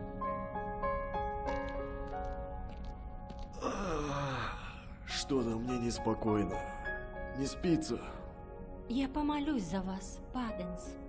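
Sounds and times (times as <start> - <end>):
quiet background music: 0.0 - 11.0
man moaning: 3.6 - 4.7.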